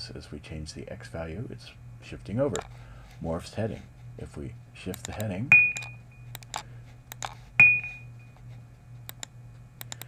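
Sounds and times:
steady low hum: 0:00.0 - 0:10.0
computer mouse clicking: 0:04.9 - 0:07.4, 0:09.1 - 0:10.0
bright ringing ping: 0:05.5 - 0:06.3, 0:07.6 - 0:08.4.

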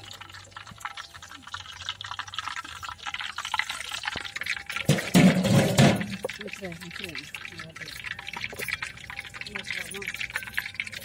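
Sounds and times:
hot oil sizzling and crackling: 0:00.0 - 0:11.0.

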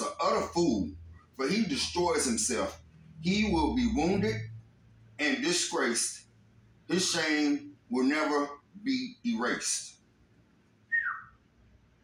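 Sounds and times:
whistle-like falling tone: 0:10.9 - 0:11.4.

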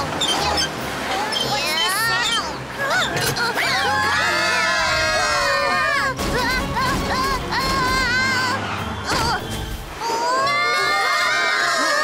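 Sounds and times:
cartoon voices shouting and screaming: 0:01.8 - 0:09.4, 0:10.0 - 0:12.0.

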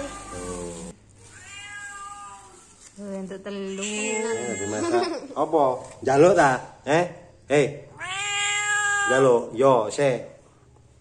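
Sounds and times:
cat meowing: 0:00.0 - 0:02.8, 0:03.7 - 0:05.0, 0:07.9 - 0:09.5.

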